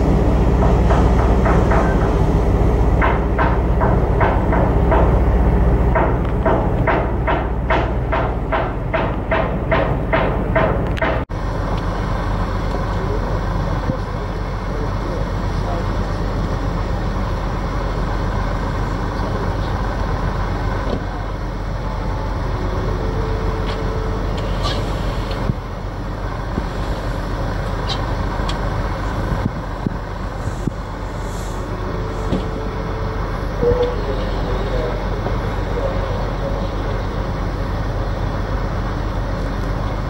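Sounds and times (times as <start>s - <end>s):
low rumble of machinery: 0.0s - 40.0s
faint voices: 30.6s - 37.6s.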